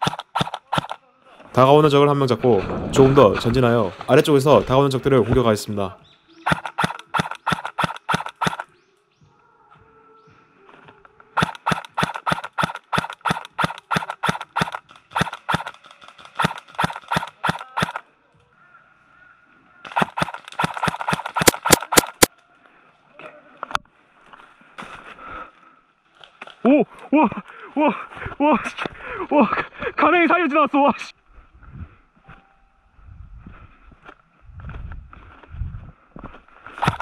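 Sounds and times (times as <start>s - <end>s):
airsoft gun firing: 0.0s - 1.0s, 6.5s - 8.7s, 11.4s - 18.0s, 19.9s - 22.3s, 36.8s - 37.0s.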